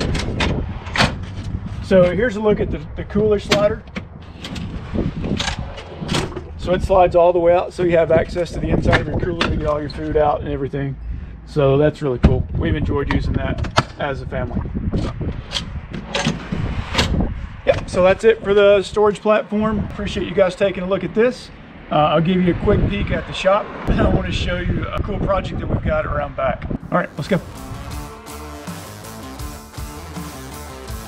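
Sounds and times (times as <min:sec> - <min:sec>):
drawer slides rattling: 0:04.2 - 0:06.5, 0:15.0 - 0:17.2.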